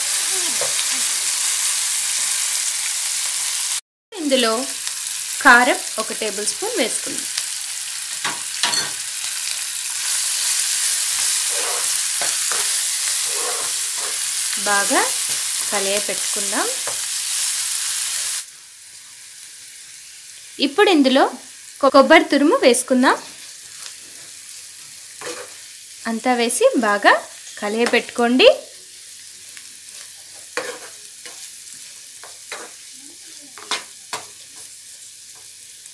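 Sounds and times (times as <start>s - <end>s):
food sizzling in hot oil: 0.0s - 35.9s.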